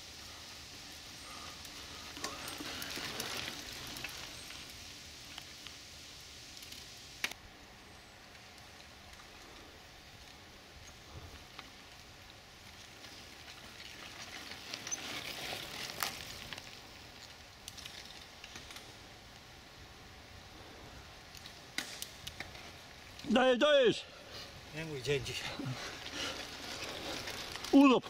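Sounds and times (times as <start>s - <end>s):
bike tyres rolling on dirt: 0.0s - 28.0s.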